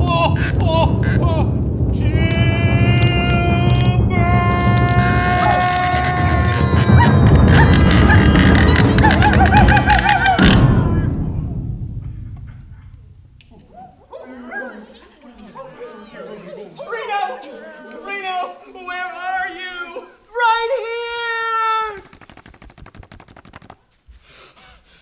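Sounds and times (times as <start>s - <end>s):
dramatic music: 0.0s - 13.8s
clattering and crashing effects: 0.0s - 14.0s.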